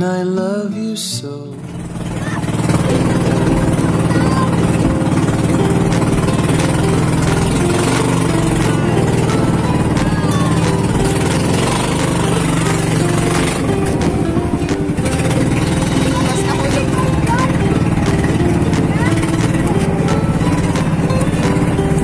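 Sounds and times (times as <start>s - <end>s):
music playing: 0.0s - 22.0s
boat engine running: 1.4s - 22.0s.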